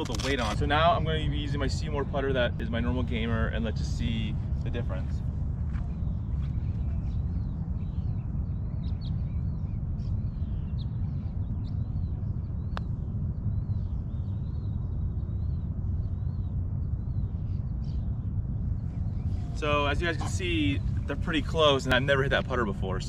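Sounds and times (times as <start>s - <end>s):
birds chirping: 0.0s - 23.0s
steady low rumble: 0.0s - 23.0s.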